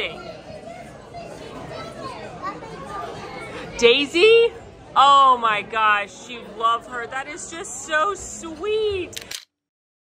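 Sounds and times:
children's voices: 0:00.0 - 0:04.4
diners chattering: 0:00.0 - 0:09.2.

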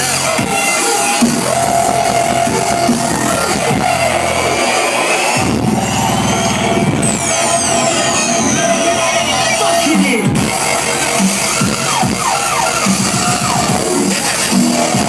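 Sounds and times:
loud dubstep music: 0:00.0 - 0:15.0.

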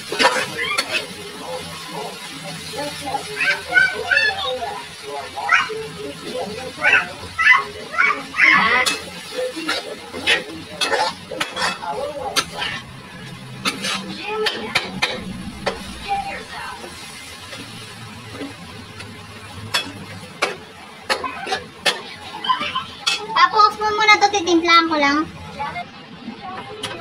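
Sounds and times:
faint sizzle: 0:00.0 - 0:27.0
metal spatula scraping a wok: 0:08.8 - 0:18.5.

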